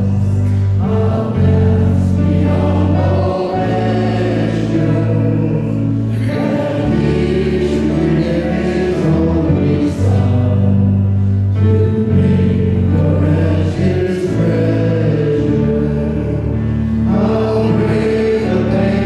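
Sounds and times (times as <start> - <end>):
group singing worship song: 0.0 - 19.0
keyboard accompaniment: 0.0 - 19.0.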